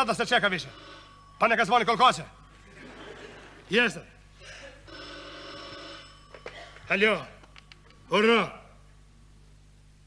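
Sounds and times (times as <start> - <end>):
telephone ringing: 0.0 - 3.6, 4.8 - 7.8.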